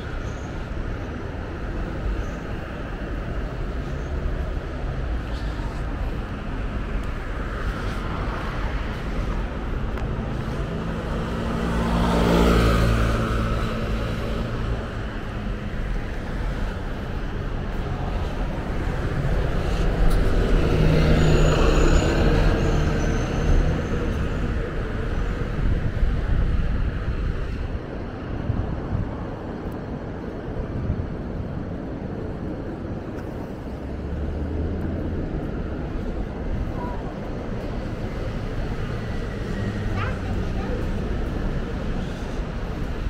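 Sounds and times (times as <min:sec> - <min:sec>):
traffic hum: 0:00.0 - 0:43.0
vehicle passing: 0:06.0 - 0:15.5.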